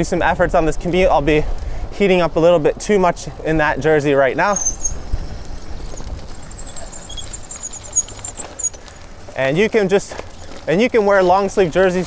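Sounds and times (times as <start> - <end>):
bicycle tyres rumbling: 0.0 - 12.0
wind on microphone: 4.7 - 7.4.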